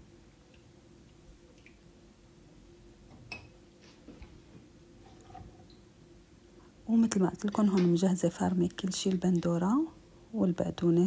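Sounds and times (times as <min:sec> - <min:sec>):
faint steady hum: 0:00.0 - 0:11.0.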